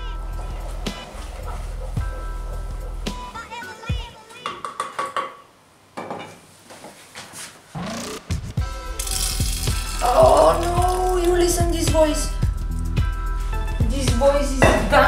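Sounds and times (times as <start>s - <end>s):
background music: 0.0s - 4.6s, 7.8s - 15.0s
pot knocks: 14.6s - 14.9s.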